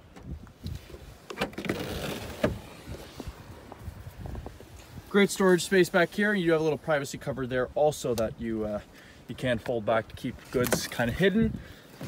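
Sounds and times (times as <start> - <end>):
liftgate rustling as it opens: 0.9 - 3.3.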